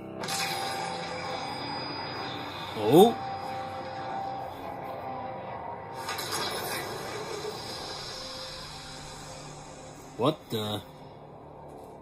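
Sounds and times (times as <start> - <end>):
trailer music through a speaker: 0.0 - 12.0.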